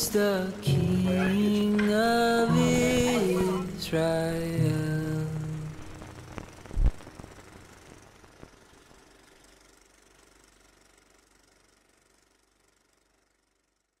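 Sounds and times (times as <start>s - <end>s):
faint crackling hiss: 0.0s - 10.5s
scattered ticks: 5.0s - 11.6s.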